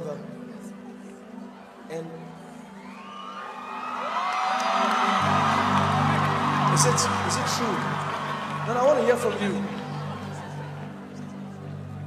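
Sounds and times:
crowd cheering and whooping: 2.7s - 11.9s.

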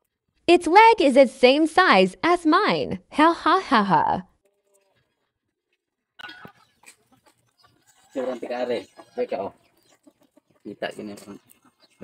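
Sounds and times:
farm animal call: 6.2s - 12.0s.

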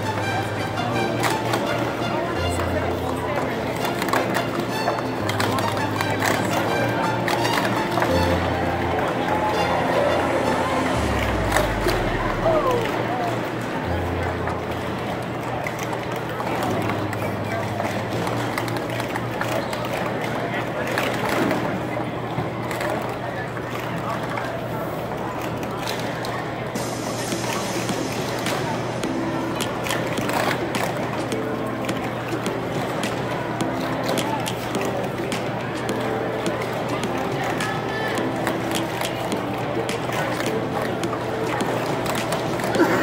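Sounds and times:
background music: 0.0s - 23.5s, 24.5s - 43.0s
crowd chatter: 0.0s - 43.0s.

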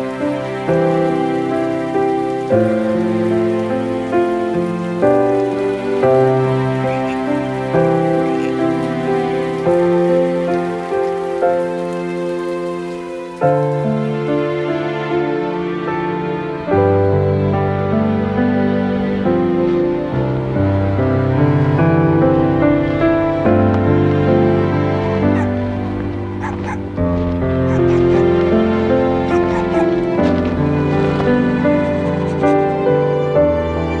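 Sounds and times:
rain falling: 0.0s - 34.0s
slow soft background music: 0.0s - 34.0s
small dog yipping: 26.4s - 26.8s, 29.3s - 30.0s.

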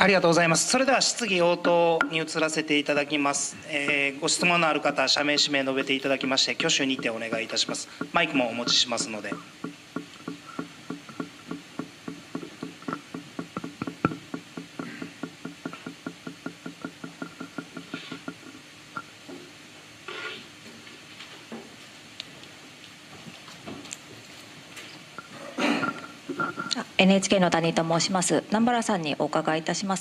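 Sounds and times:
rapid clicking: 3.9s - 18.6s.

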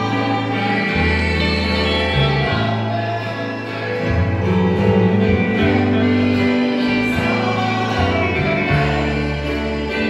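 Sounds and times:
guitars playing: 0.0s - 10.0s
women singing together: 0.0s - 10.0s.

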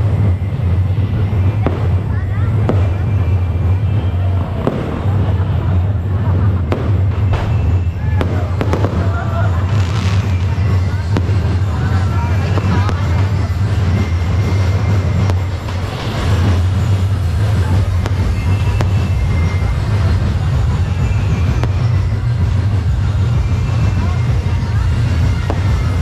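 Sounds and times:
fireworks cracking and popping: 0.0s - 26.0s
large crowd voices: 0.0s - 26.0s
loud low hum: 0.0s - 26.0s.

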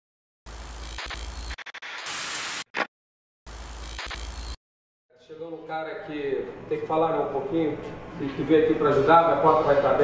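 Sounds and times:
tv static hiss: 0.5s - 2.9s, 3.5s - 4.6s.

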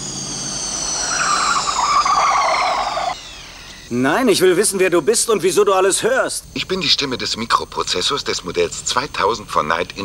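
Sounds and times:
car driving with high whine: 0.0s - 3.9s
tyre squeal: 0.6s - 3.7s.

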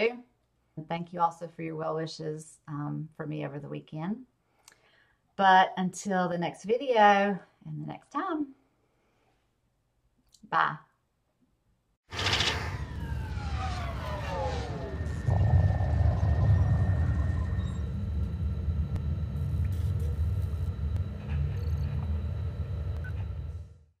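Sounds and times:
tones gliding downward: 12.2s - 20.4s
deep steady rumble: 12.2s - 23.7s.

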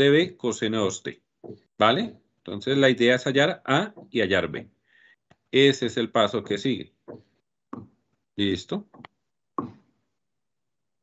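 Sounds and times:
person speaking: 5.5s - 9.8s.

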